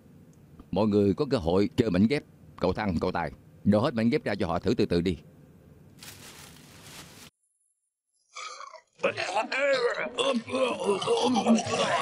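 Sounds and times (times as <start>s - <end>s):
person retching: 8.3s - 12.0s.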